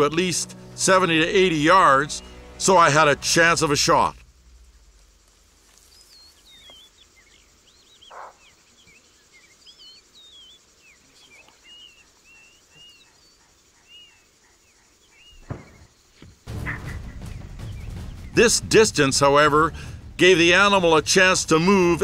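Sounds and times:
birds chirping: 0.0 - 22.0
soft rustle: 4.2 - 7.0.

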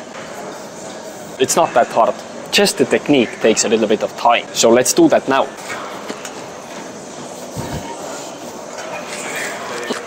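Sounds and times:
gym background noise: 0.0 - 10.0.

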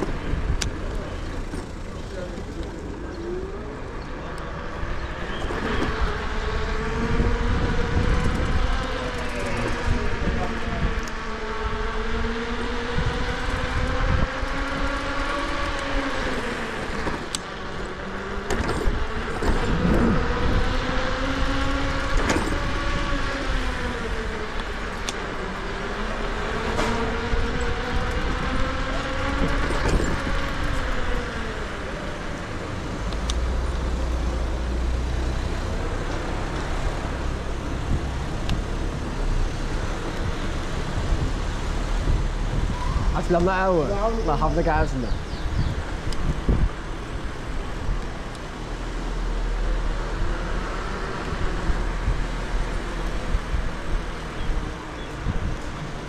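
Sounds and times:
wind rumble on microphone: 0.0 - 1.4, 4.7 - 56.0
road noise: 0.0 - 56.0
electric scooter motor whining: 1.2 - 32.9.

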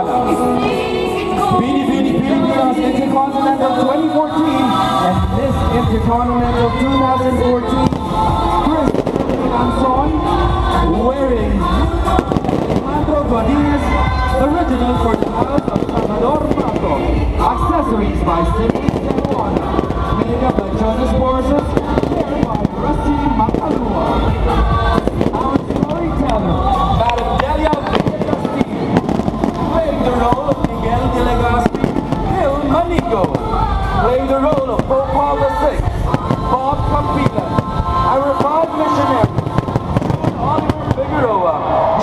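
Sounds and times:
music: 0.0 - 42.0
voices: 0.0 - 42.0
fireworks crackling and popping: 7.2 - 42.0.

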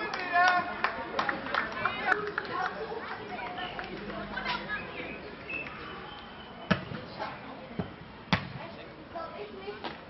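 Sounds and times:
ball smacked by arms: 7.8 - 8.6.

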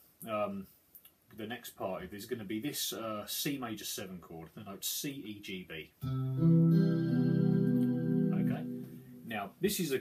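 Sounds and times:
electric guitar chord ringing: 6.0 - 9.3.

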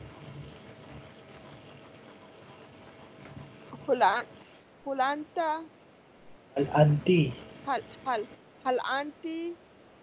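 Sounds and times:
faint background hiss: 3.2 - 10.0.

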